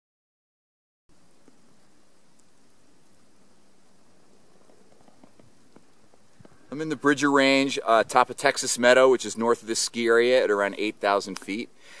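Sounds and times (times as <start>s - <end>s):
outdoor background hiss: 1.1s - 12.0s
light ticks: 2.3s - 3.2s.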